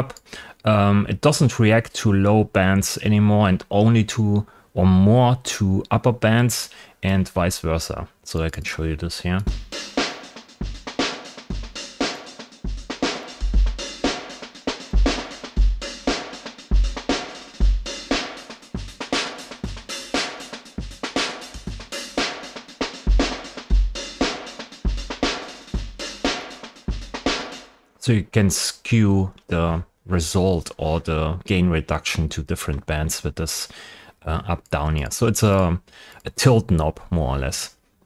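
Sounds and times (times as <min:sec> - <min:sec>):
drum kit loop: 0:08.7 - 0:27.8.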